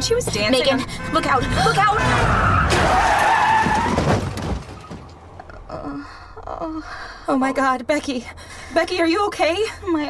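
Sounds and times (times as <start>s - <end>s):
car tyres screeching: 0.1s - 5.4s
crash knocks: 3.6s - 5.2s.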